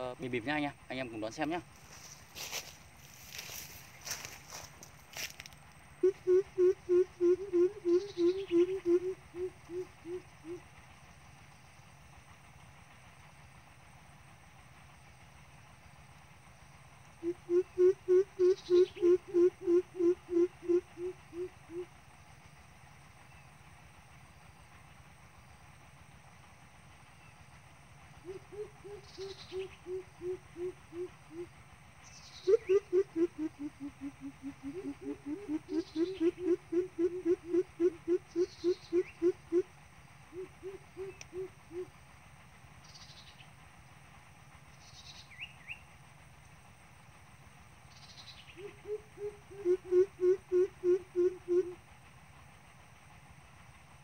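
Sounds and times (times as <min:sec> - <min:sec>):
bird deep hooting call: 0:06.0 - 0:10.8, 0:17.2 - 0:22.0, 0:28.2 - 0:39.7, 0:40.3 - 0:42.0, 0:48.5 - 0:51.8.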